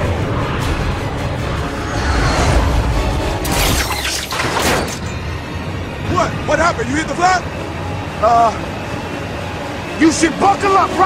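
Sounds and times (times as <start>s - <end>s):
deep rumble: 0.0s - 6.0s
film score music: 0.0s - 11.0s
crashing bursts: 1.8s - 5.2s.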